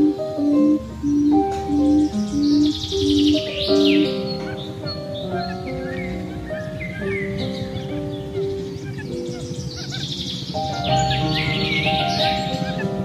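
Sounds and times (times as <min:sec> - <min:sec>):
birds chirping: 0:00.0 - 0:13.0
slow relaxing music: 0:00.0 - 0:13.0.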